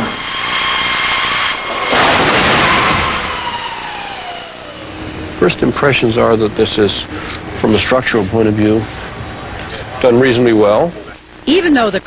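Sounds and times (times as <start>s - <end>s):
whine falling in pitch: 0.0s - 12.0s.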